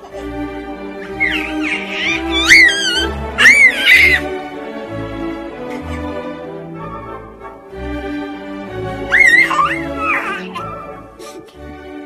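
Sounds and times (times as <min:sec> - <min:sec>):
background music: 0:00.0 - 0:12.0
high-pitched squealing calls: 0:01.0 - 0:04.2, 0:09.1 - 0:10.6.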